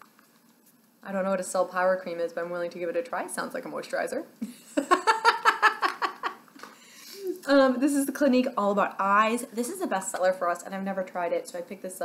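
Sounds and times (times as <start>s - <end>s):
woman laughing: 4.4s - 6.4s.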